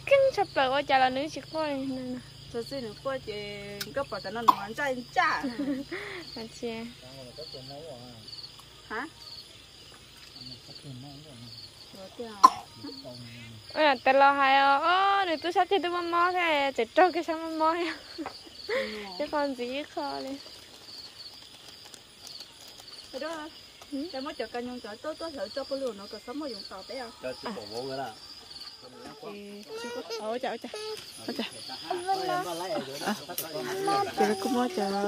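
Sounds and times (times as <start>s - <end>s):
people talking: 0.0s - 8.2s, 10.4s - 18.1s, 18.7s - 20.4s, 28.9s - 35.0s
crickets chirping: 0.0s - 35.0s.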